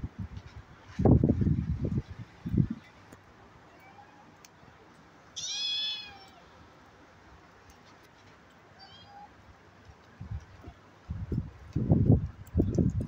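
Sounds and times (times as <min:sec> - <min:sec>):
kitten meowing: 0:05.4 - 0:06.4.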